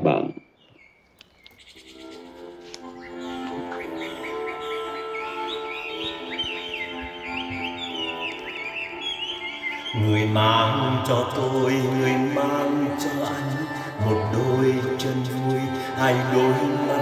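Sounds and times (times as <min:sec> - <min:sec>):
birds chirping: 0:00.0 - 0:17.0
accordion playing: 0:01.9 - 0:17.0.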